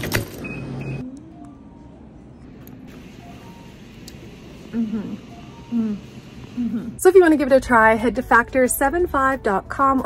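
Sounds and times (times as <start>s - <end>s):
microwave hum: 0.0s - 7.0s.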